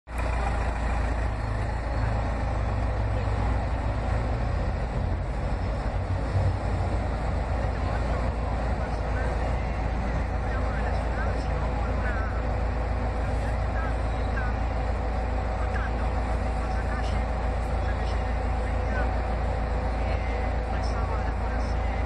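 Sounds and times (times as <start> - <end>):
cars passing: 0.1 - 22.0
steady low rumble: 0.1 - 22.0.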